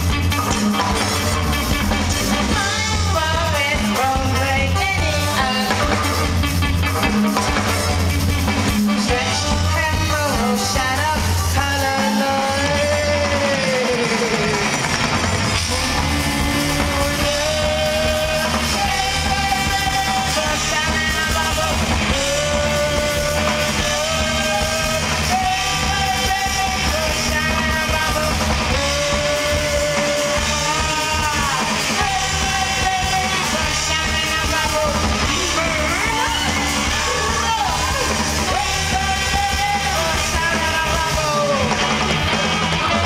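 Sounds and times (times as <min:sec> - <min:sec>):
rock band playing: 0:00.0 - 0:43.0
singer holding long notes: 0:09.0 - 0:41.8.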